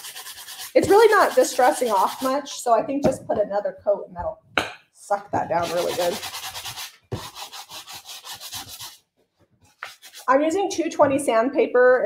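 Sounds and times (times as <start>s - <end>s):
sandpaper rubbing on tin: 0.0s - 2.5s, 5.6s - 9.0s, 9.8s - 10.3s.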